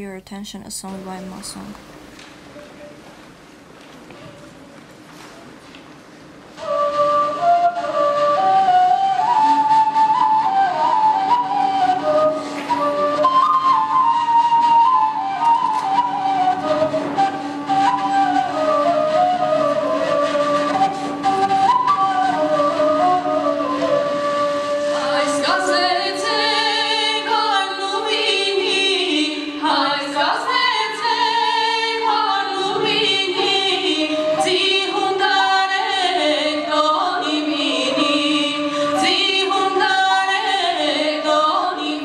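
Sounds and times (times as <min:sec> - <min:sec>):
faint hall noise: 0:00.0 - 0:42.0
woodwind melody: 0:06.5 - 0:42.0
voices singing: 0:06.6 - 0:42.0.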